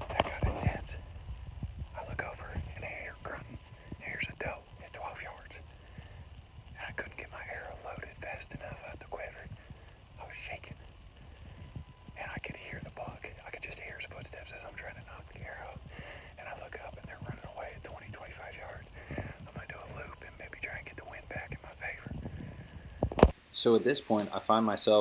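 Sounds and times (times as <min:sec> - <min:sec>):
man whispering: 0:00.0 - 0:01.1, 0:01.9 - 0:22.7, 0:24.0 - 0:24.5.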